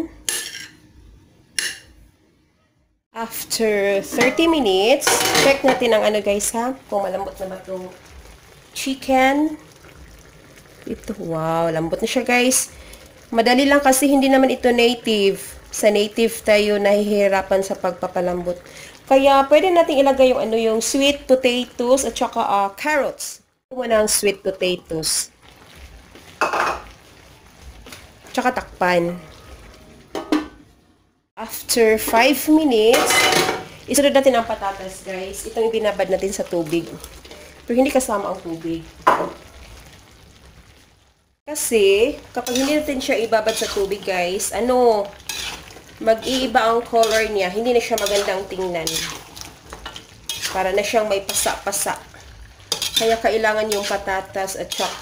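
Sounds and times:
cookware and utensils clattering: 0.2 - 0.9, 1.6 - 2.0, 4.0 - 6.2, 26.4 - 27.0, 30.0 - 30.7, 32.1 - 33.8, 39.0 - 39.4, 42.4 - 44.3, 44.9 - 51.7, 52.6 - 55.0.

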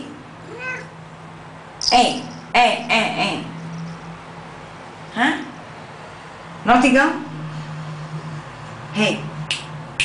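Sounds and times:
cat meowing softly: 0.4 - 1.0.

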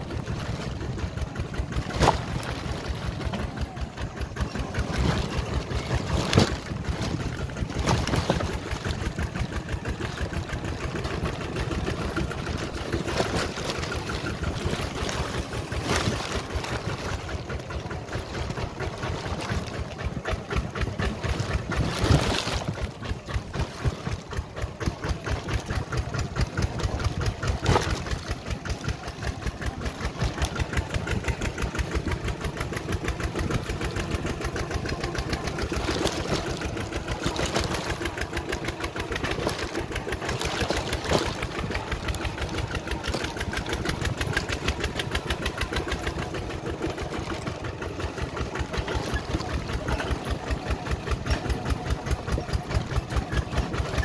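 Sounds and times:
diesel engine chugging: 0.0 - 54.0.

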